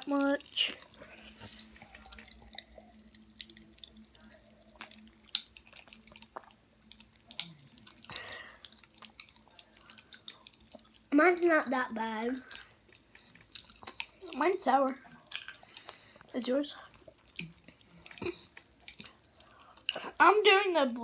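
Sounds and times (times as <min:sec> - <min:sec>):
candy crackling in soda: 0:00.0 - 0:21.0
faint steady hum: 0:00.0 - 0:21.0.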